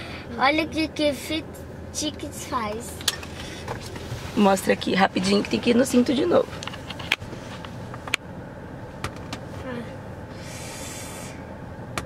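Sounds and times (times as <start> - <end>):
car cabin hum: 0.0 - 12.0
hiss: 10.4 - 11.5.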